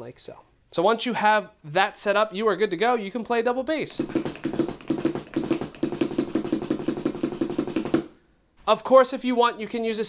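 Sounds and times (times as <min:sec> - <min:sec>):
fast electronic kick drum strokes: 0:03.9 - 0:08.1.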